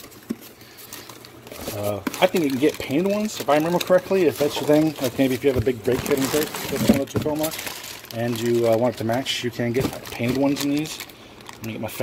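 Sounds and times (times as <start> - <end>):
cardboard rustling: 0.0 - 11.1
plastic bags crinkling: 0.0 - 12.0.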